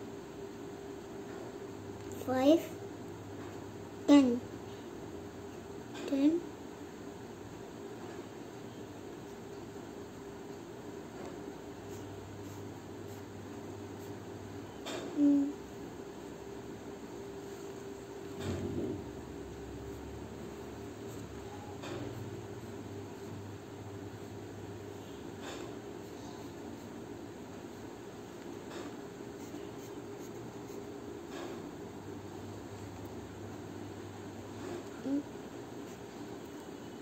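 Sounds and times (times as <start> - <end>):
steady low hum: 0.0 - 37.0
low hum-like voice sound: 1.2 - 6.7, 8.0 - 37.0
pencil scratching on paper: 11.8 - 13.3, 29.4 - 31.0.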